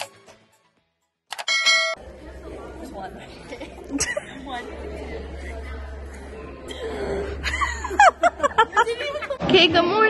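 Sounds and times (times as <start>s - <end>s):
people chattering in large room: 1.7s - 10.0s.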